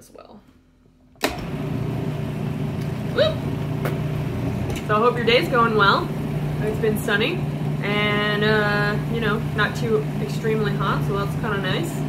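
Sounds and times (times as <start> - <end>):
blender running: 1.3 - 12.0.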